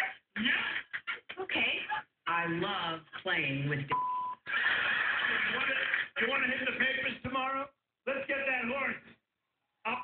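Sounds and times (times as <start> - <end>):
censor bleep tone: 3.9 - 4.4
television audience crowd noise: 4.4 - 8.8.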